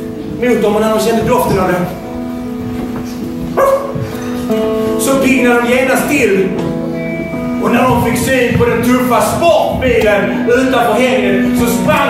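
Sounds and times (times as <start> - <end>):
electric guitar sustained chord: 1.8 - 8.0.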